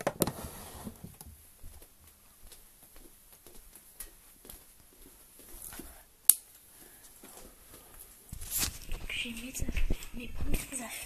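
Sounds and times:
faint rustling: 0:00.2 - 0:11.0.

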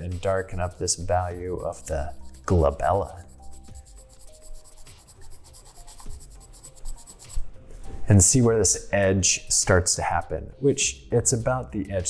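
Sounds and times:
charcoal pencil scratching paper: 0:00.3 - 0:07.5.

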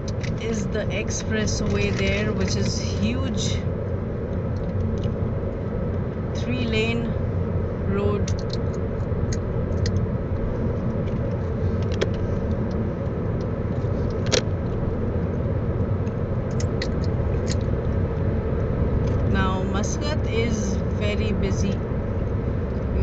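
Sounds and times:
car engine running: 0:00.0 - 0:23.0
tyres rumbling on road: 0:00.0 - 0:23.0.

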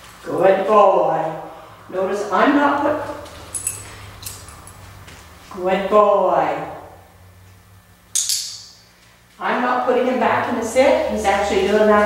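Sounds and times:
dog collar tags clinking: 0:03.5 - 0:04.8.

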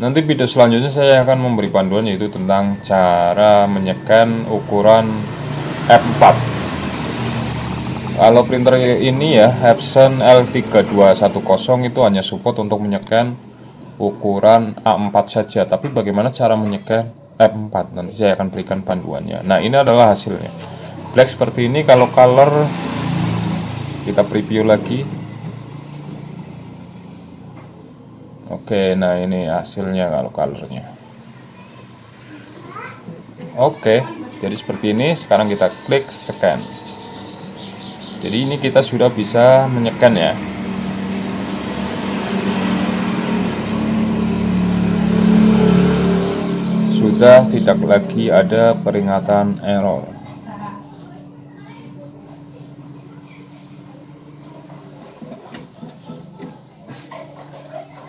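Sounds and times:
scanner motor humming: 0:01.4 - 0:12.8, 0:30.2 - 0:56.3.

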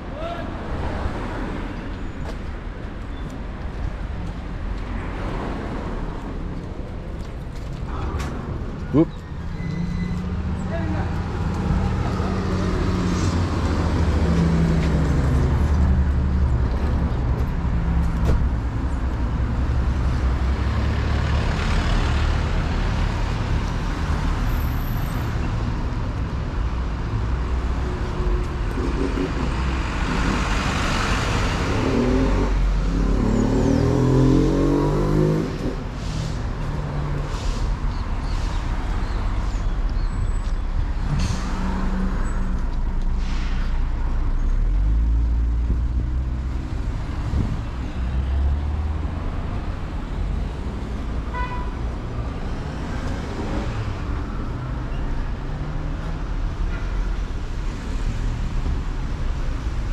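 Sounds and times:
car engines passing by: 0:00.0 - 0:59.9.

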